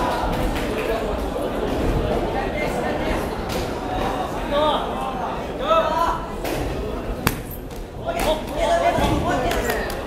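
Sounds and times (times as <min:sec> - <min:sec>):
voices echoing in hall: 0:00.0 - 0:10.0
sharp smack: 0:07.2 - 0:07.6.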